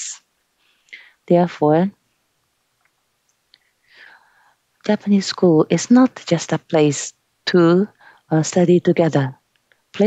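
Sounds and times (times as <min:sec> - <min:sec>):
faint breath: 0:00.6 - 0:01.2, 0:03.6 - 0:04.7, 0:08.0 - 0:08.3.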